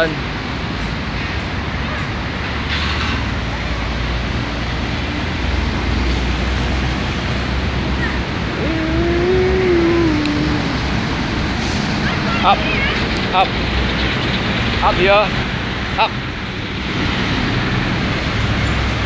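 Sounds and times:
drawn-out voiced sound: 7.8s - 11.8s.

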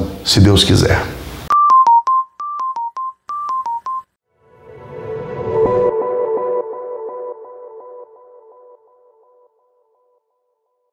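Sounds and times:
electronic jingle tones pulsing: 1.5s - 4.1s.

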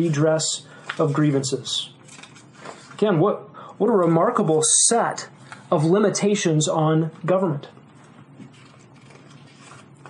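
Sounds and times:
paper sheets rustling: 2.0s - 2.9s, 8.0s - 10.0s.

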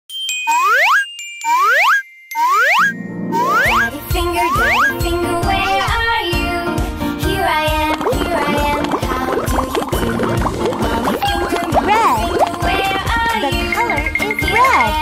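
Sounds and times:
cheerful children's music: 0.1s - 15.0s
cartoon rising pitch glide: 0.5s - 6.6s.

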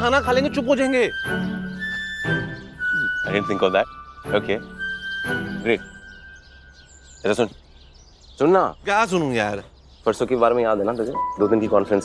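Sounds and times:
soft background music: 0.0s - 7.6s, 10.1s - 12.0s
faint bird chirps: 0.0s - 12.0s.

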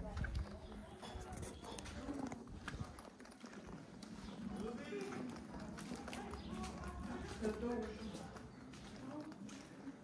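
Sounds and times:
footsteps on stone paving: 0.0s - 10.0s
indistinct voices talking: 0.0s - 10.0s.

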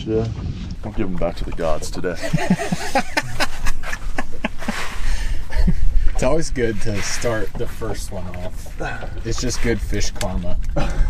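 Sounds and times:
man laughing: 2.2s - 6.0s
fish knocking on boat: 7.5s - 9.5s.

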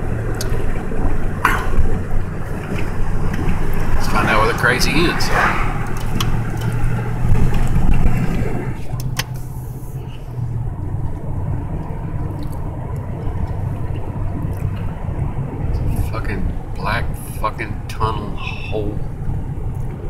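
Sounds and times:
car road and engine noise: 0.0s - 20.0s.

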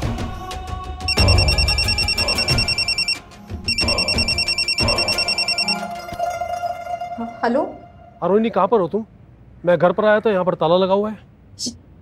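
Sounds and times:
tense background music: 0.0s - 8.5s
mobile phone ringing: 1.1s - 6.0s.

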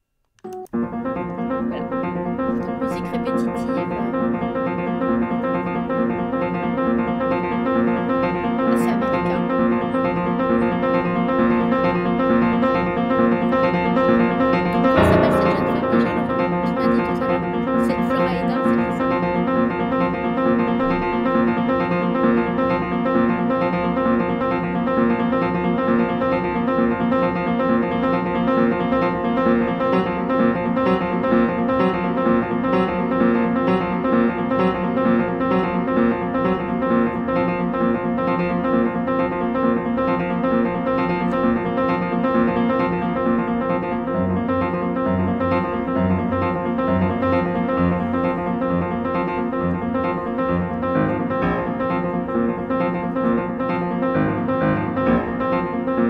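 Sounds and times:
harp music: 14.8s - 19.1s.

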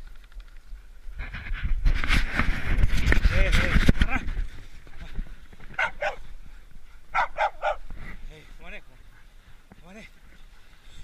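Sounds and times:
hounds yipping: 5.7s - 6.3s, 7.0s - 7.9s.

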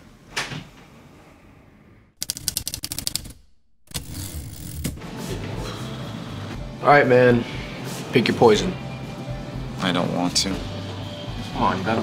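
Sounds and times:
typewriter key clacks: 2.2s - 5.0s.

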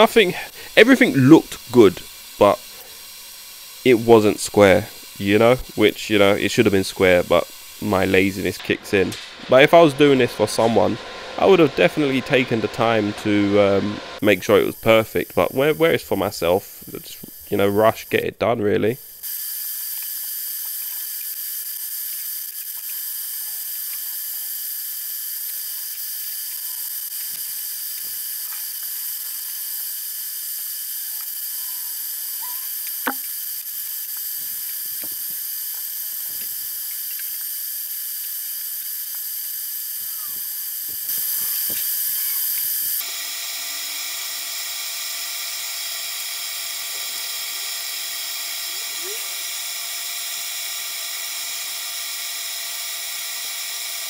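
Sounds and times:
steady hiss: 0.0s - 21.3s, 25.4s - 43.0s.

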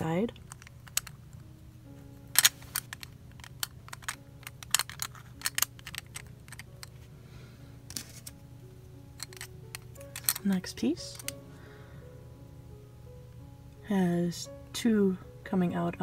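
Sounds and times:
soft background music: 0.0s - 16.0s
plastic pieces clicking: 0.3s - 1.5s, 2.3s - 7.0s, 7.9s - 8.4s, 9.1s - 11.4s.

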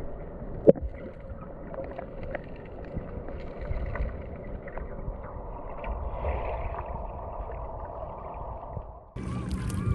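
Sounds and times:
wind rumble on microphone: 2.8s - 9.9s.

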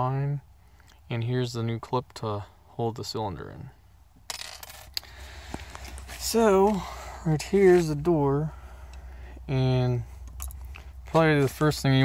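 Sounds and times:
soft handling rustling: 5.2s - 8.2s.

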